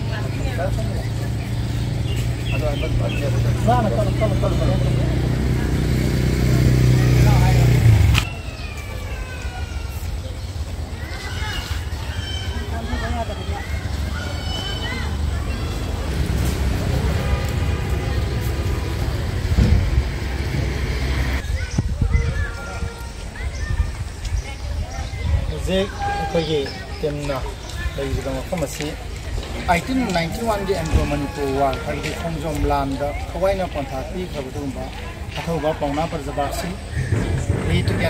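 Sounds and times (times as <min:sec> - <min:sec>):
engine humming: 0:00.0 - 0:21.5, 0:26.6 - 0:38.0
open-air background: 0:00.0 - 0:38.0
wind rumbling on microphone: 0:17.5 - 0:28.3.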